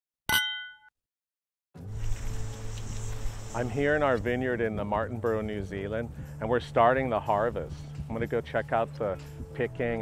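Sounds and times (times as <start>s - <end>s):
metallic bell ding: 0.3s - 0.9s.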